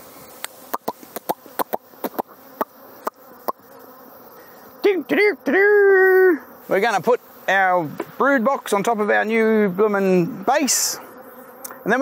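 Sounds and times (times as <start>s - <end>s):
honey bees buzzing: 0.0s - 12.0s.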